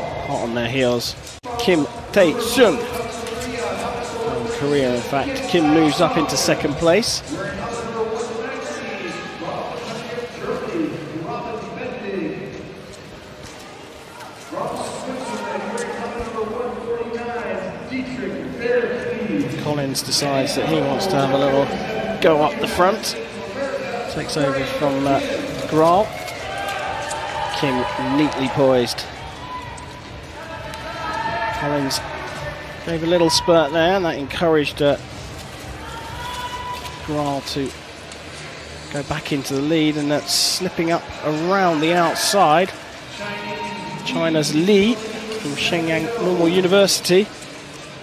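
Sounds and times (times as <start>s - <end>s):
man talking: 0.0s - 12.7s, 14.5s - 26.1s, 27.5s - 29.1s, 32.8s - 35.0s, 38.9s - 47.3s.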